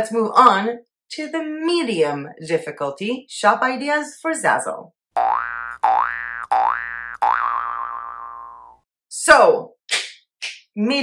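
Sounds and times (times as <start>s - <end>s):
cartoon boing sound effect: 5.2s - 8.8s.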